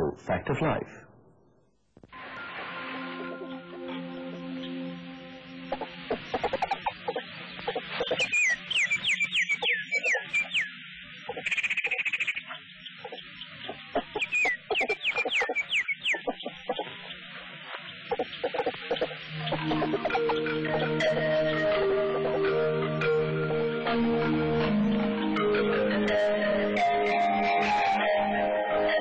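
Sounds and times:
music with steady tones: 0:02.0 - 0:10.7, 0:18.7 - 0:29.0
bird-like animal calls: 0:05.6 - 0:22.5.

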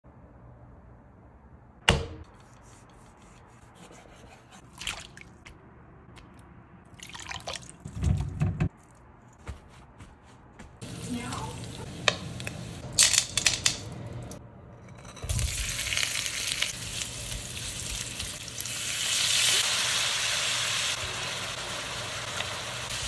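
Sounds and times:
liquid dripping: 0:06.1 - 0:08.0
pork frying in a wok: 0:15.3 - 0:23.0.

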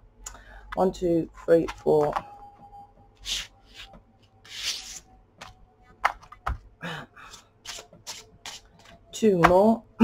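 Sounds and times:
cards sliding across a table: 0:03.2 - 0:05.1.

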